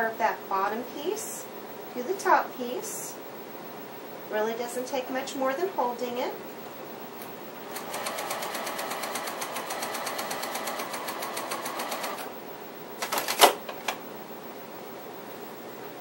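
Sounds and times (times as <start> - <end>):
sewing machine stitching: 7.7 - 12.3.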